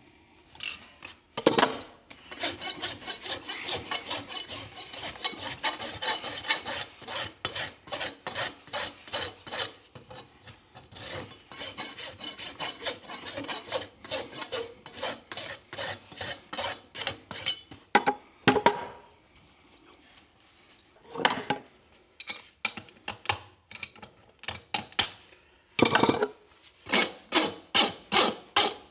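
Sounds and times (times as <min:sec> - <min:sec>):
rasp filing hoof: 0:02.2 - 0:17.8, 0:26.8 - 0:28.9.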